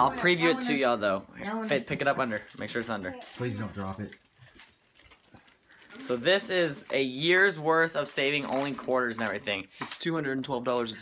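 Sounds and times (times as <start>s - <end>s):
plastic bag of coins rustling: 2.2s - 9.7s.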